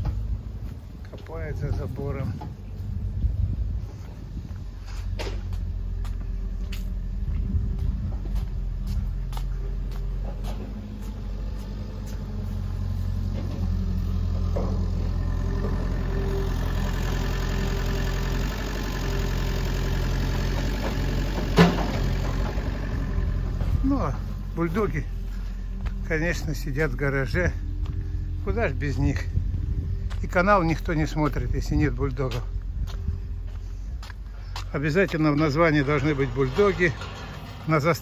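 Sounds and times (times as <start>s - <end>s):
tractor diesel engine running: 0.0s - 38.0s.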